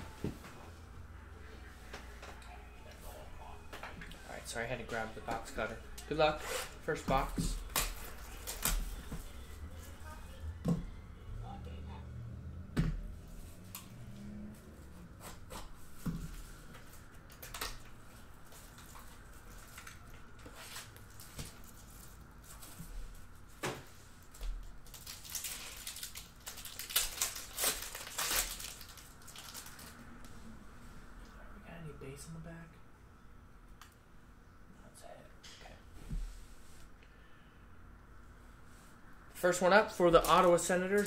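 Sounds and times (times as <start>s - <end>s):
card pack wrapper crinkling and tearing: 24.8s - 30.0s.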